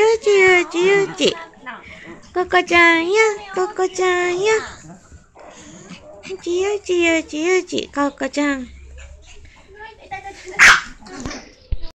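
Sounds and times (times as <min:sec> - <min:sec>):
small dog barking sharply: 0:10.6 - 0:11.0.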